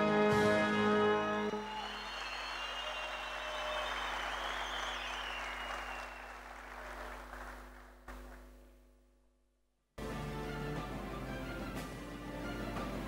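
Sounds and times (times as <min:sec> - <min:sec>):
large audience applauding: 0:01.4 - 0:08.5.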